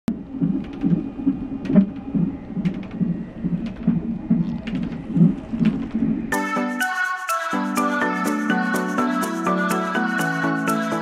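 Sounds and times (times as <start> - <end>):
fetal heartbeat whooshing pulses: 0.1 - 6.3.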